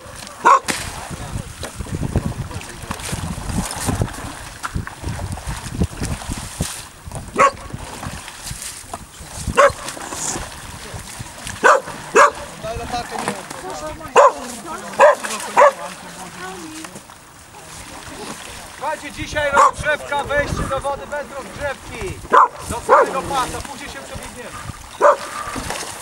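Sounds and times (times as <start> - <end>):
dog barking: 0.0 - 0.7, 7.4 - 7.7, 9.6 - 9.9, 11.6 - 12.5, 14.1 - 15.9, 19.5 - 19.8, 22.3 - 23.2, 25.0 - 25.5.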